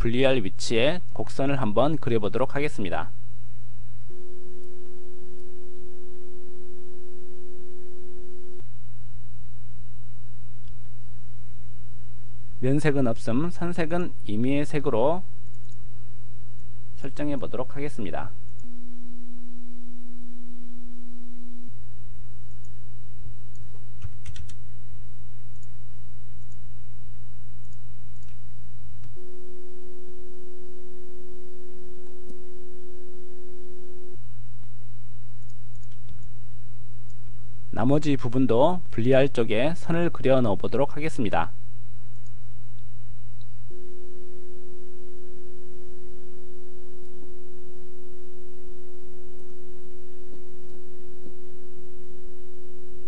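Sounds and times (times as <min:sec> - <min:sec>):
electronic pure tone: 0:00.0 - 0:53.0
faint clicks: 0:25.5 - 0:25.8, 0:35.4 - 0:36.4.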